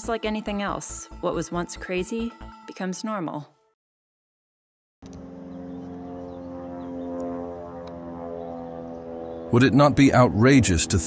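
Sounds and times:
propeller plane engine droning: 0:05.0 - 0:11.0.

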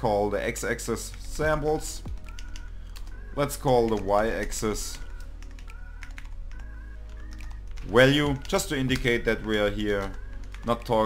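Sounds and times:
background music: 0:00.0 - 0:11.0
keyboard keys clicking: 0:02.1 - 0:11.0.

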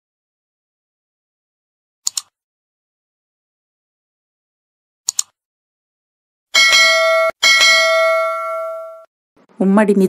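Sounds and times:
notification bell ding: 0:06.6 - 0:09.1.

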